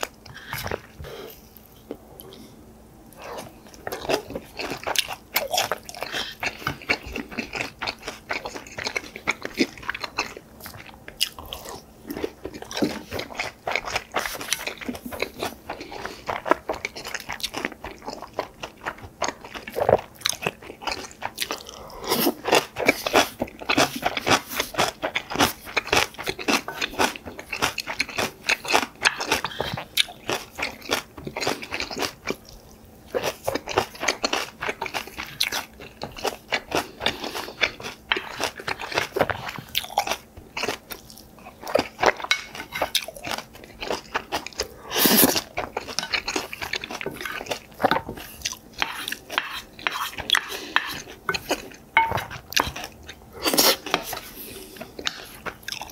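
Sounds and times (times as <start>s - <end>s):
close-miked crunchy chewing: 0.0s - 55.9s.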